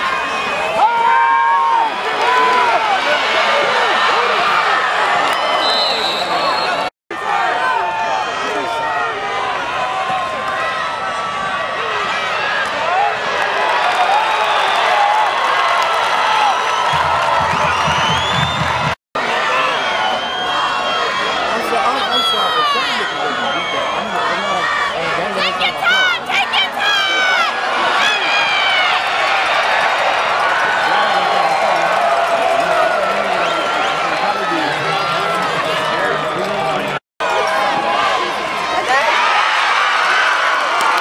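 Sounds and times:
stadium crowd cheering and shouting: 0.0 - 41.0.

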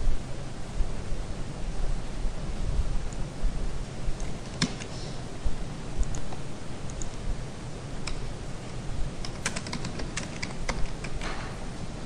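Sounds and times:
computer keyboard keystrokes: 9.2 - 11.4.

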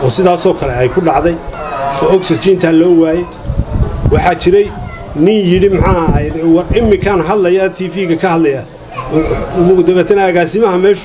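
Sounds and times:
man speaking into a microphone: 0.0 - 3.4, 4.1 - 11.0.

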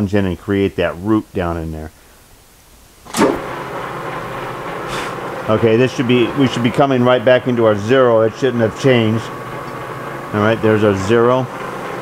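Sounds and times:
metal lathe running: 3.1 - 12.0.

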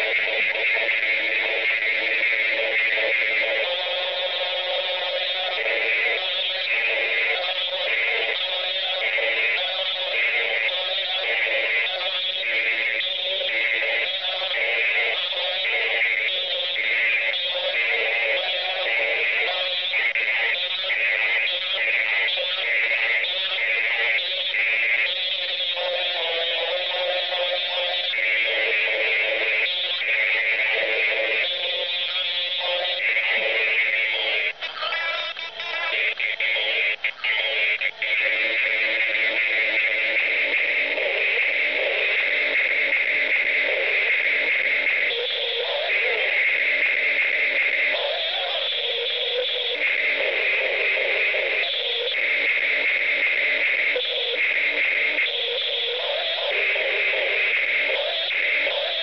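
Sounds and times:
electronic music through small speaker: 0.0 - 59.0.

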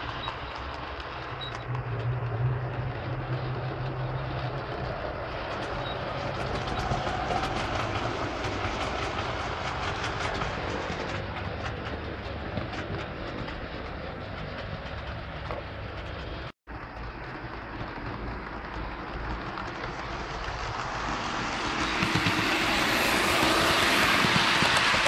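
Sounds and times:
low motor hum: 0.0 - 25.0
model train wheels clicking: 0.0 - 25.0.

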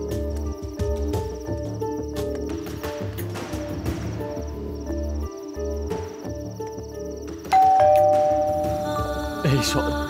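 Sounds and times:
doorbell chime ding-dong: 7.6 - 9.1.

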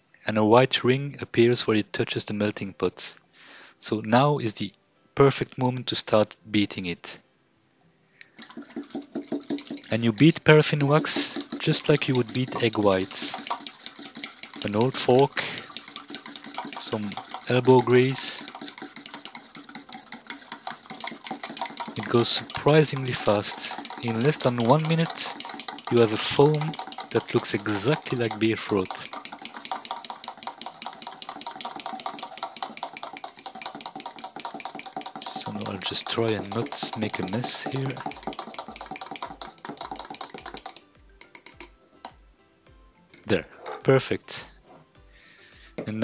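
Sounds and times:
background music with low beat: 8.3 - 46.0
fork clicking against metal pot: 8.6 - 41.8.

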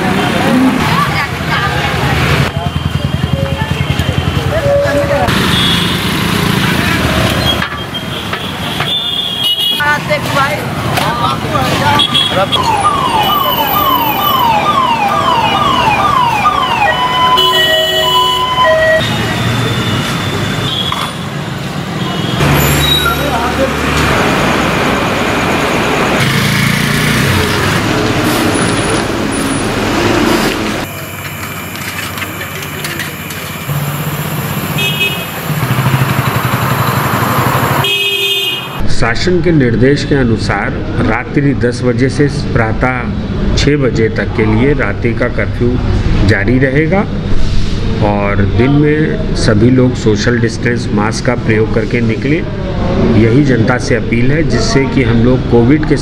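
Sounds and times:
people's voices: 0.0 - 5.4, 9.8 - 16.8, 47.9 - 56.0
motor vehicles passing: 0.0 - 8.9, 9.8 - 38.9.

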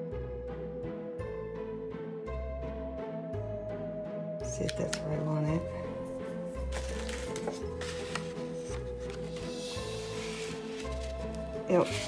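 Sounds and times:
paper leaves rustling: 6.7 - 12.0.

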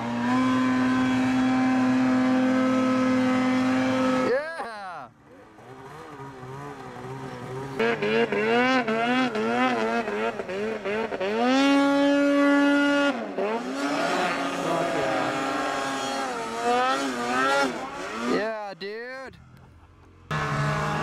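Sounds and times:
snowmobile engine revving: 0.0 - 21.0.

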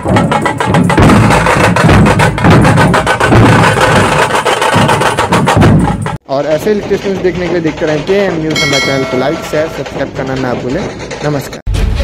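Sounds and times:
loud fast drumming: 0.0 - 11.5.

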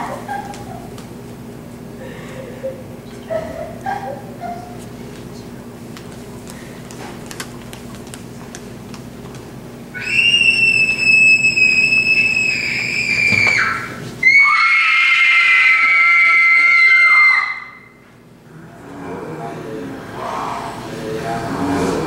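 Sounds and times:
high-pitched screams: 10.0 - 18.0.

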